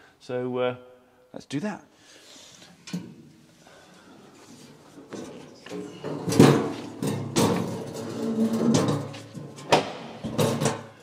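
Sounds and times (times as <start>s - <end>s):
metal box handling noise: 4.6s - 11.0s.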